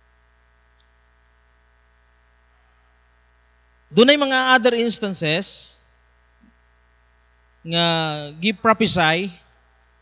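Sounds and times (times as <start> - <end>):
faint electrical mains hum: 0.0 - 10.0
man's voice: 3.9 - 5.8, 7.7 - 9.4.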